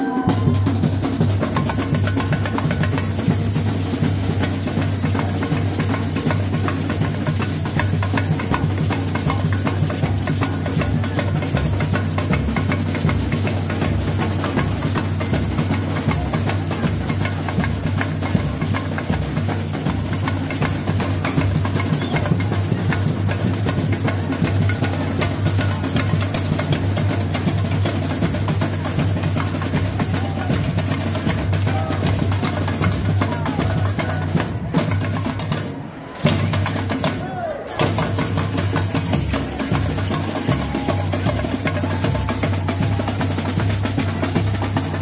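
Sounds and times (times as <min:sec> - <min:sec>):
snare drums: 0:00.0 - 0:45.0
bass drums: 0:37.8 - 0:45.0.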